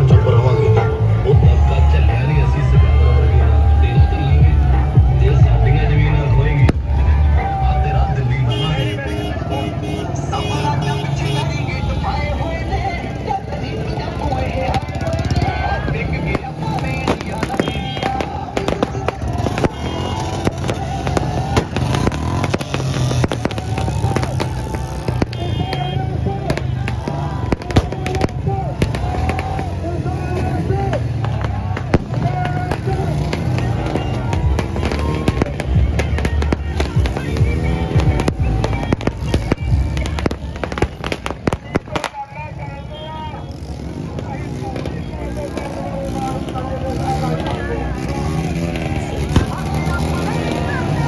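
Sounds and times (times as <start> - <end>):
crowd voices: 0.0 - 51.0
firecrackers cracking: 13.3 - 42.5, 44.1 - 51.0
music with strong beat: 31.9 - 41.8.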